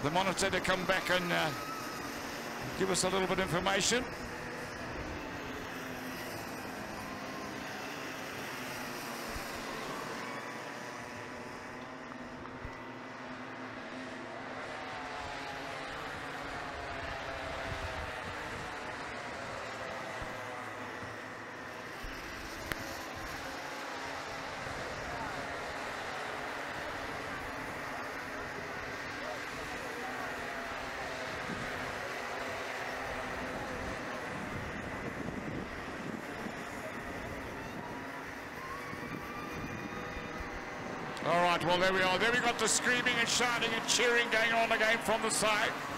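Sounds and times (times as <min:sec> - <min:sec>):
kart engines buzzing: 0:00.0 - 0:45.9.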